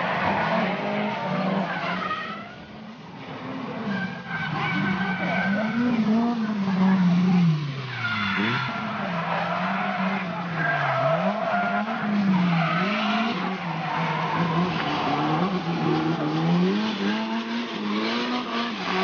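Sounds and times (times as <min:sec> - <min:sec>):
tyres sliding on asphalt: 0:00.0 - 0:19.0.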